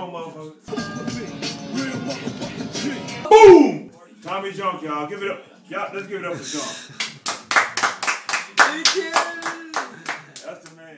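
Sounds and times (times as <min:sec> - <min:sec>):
people clapping: 0:07.0 - 0:10.9.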